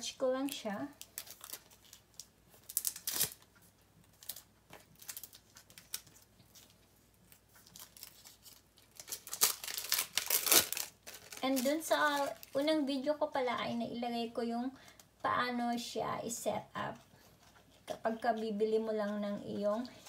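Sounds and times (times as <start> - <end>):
plastic sleeve rustling: 0.5 - 13.7.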